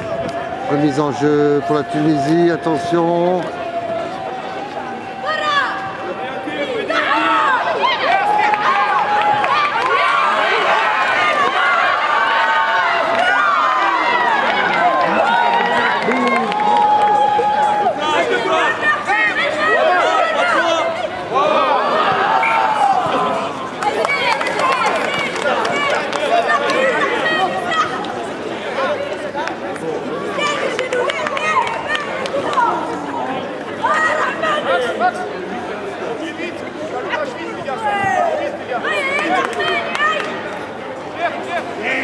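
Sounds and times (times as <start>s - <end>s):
crowd shouting: 0.0s - 28.2s, 30.1s - 35.1s.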